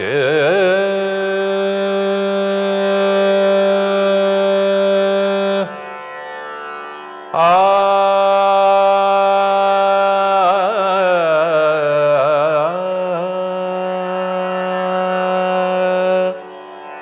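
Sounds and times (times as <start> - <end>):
man singing long held notes: 0.0 - 5.8, 7.4 - 16.5
tanpura drone: 0.0 - 17.0.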